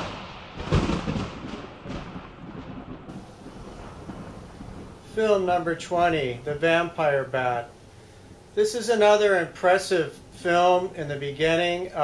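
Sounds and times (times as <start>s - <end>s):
rain hiss: 0.0s - 2.3s, 3.1s - 12.0s
thunder rumble: 0.0s - 12.0s.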